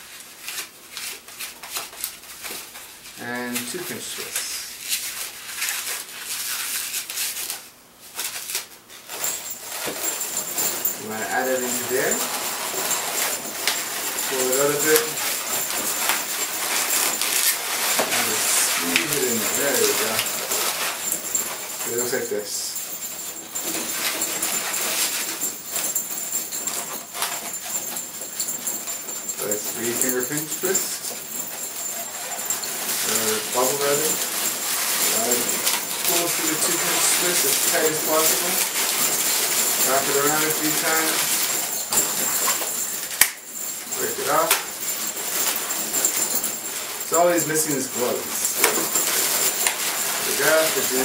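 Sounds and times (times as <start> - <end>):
rubber rustling: 4.3 - 51.0.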